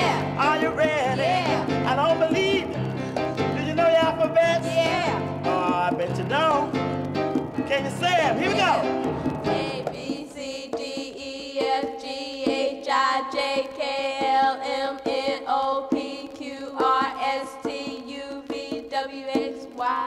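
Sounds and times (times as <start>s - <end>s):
children's songs from record: 0.0s - 2.8s, 3.7s - 6.5s, 9.5s - 20.0s.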